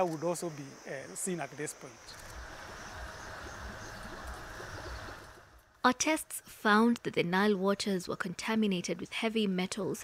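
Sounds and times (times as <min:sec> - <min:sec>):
low uneven rumble: 0:01.9 - 0:05.7.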